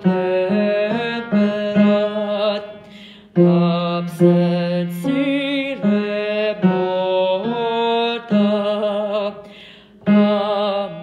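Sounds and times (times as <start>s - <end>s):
person singing: 0.0s - 11.0s.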